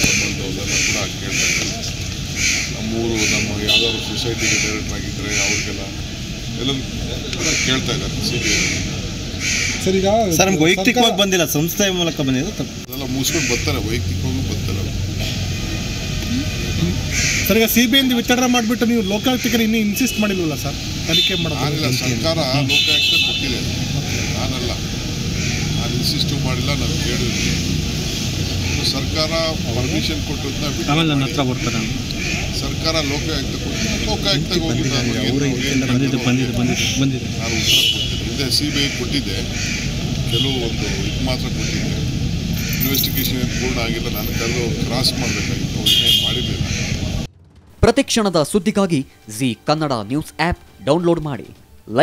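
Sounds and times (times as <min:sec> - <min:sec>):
man speaking: 0:00.0 - 0:02.0, 0:02.8 - 0:08.9, 0:09.8 - 0:15.1, 0:16.6 - 0:24.9, 0:28.8 - 0:39.6, 0:40.3 - 0:46.7, 0:47.8 - 0:52.0
crow cawing: 0:00.0 - 0:06.1, 0:07.4 - 0:10.1, 0:13.0 - 0:14.0, 0:17.0 - 0:20.2, 0:20.8 - 0:47.3
voices talking: 0:00.0 - 0:52.0.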